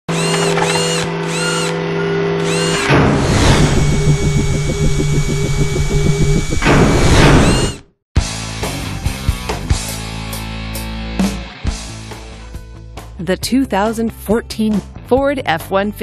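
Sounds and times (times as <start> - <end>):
steady motor hum: 0.1 - 7.8
fast pulsing machine whir: 2.4 - 7.8
whoosh: 2.9 - 7.8.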